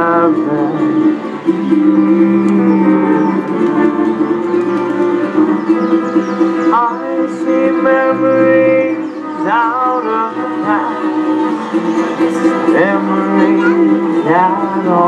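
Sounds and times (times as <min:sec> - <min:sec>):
person singing: 0:00.0 - 0:15.0
plucked acoustic guitar: 0:00.0 - 0:15.0
upright bass: 0:00.0 - 0:15.0.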